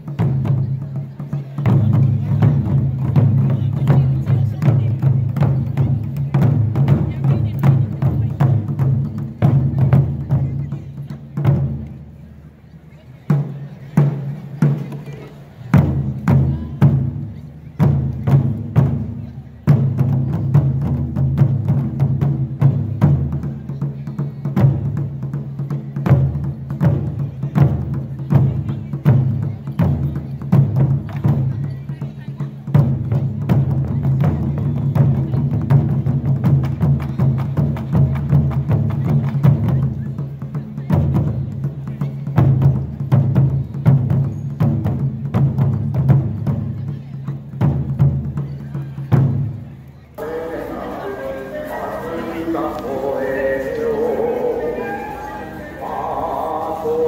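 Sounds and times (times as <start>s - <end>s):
taiko drums: 0.0s - 12.2s, 13.3s - 49.6s.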